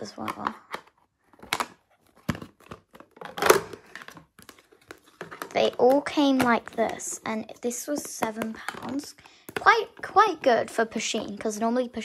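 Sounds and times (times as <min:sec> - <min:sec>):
plastic pots scraping: 0:02.2 - 0:11.2.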